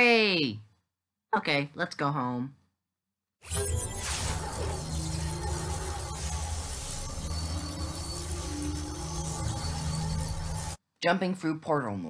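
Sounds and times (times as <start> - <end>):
electronic rushing noise: 3.5 - 10.8
low hum: 3.5 - 10.8.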